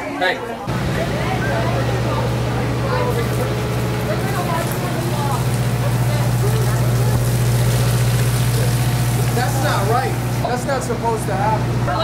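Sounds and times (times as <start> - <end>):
voices chattering: 0.0 - 12.0
bus engine idling: 0.7 - 10.5
water splashing on ground: 3.1 - 10.4.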